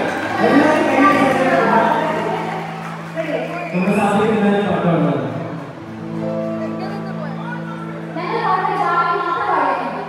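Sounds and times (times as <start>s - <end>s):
man speaking through pa system: 3.6s - 5.5s.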